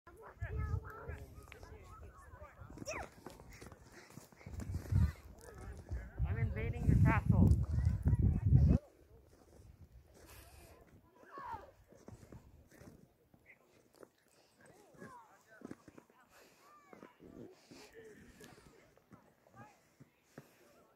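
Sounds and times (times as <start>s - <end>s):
children calling and chattering: 0.1s - 6.3s, 6.9s - 13.0s, 13.9s - 20.9s.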